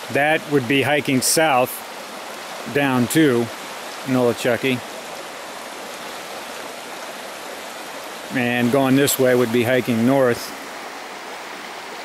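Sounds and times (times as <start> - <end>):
stream running over stones: 0.0 - 12.0.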